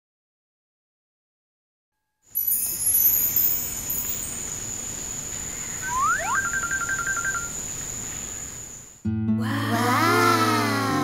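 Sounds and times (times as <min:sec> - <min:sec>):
glittering chime shimmer: 0:02.3 - 0:04.8, 0:05.8 - 0:07.5
high ringing tone: 0:02.3 - 0:04.8, 0:05.6 - 0:07.7
soft hiss: 0:02.3 - 0:09.0.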